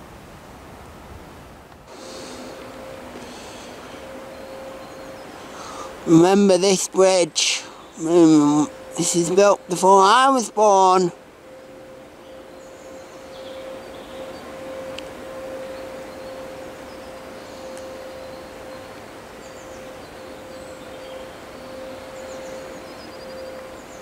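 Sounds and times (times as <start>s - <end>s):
constant mid-pitched hum: 0.0s - 24.0s
steady rushing noise: 0.0s - 24.0s
faint bird chirps: 2.0s - 6.0s, 11.5s - 24.0s.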